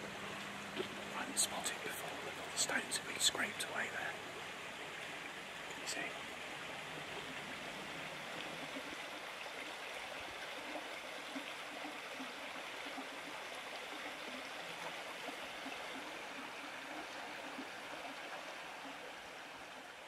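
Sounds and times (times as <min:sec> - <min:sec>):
river water running over stones: 0:00.0 - 0:20.0.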